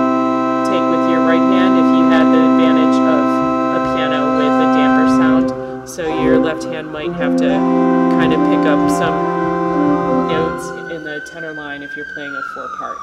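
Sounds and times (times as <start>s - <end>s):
church organ chords: 0.0s - 13.0s.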